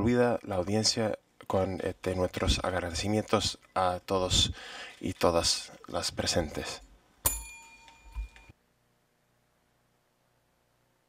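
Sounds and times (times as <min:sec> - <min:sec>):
desk call bell ringing: 0:07.2 - 0:08.5.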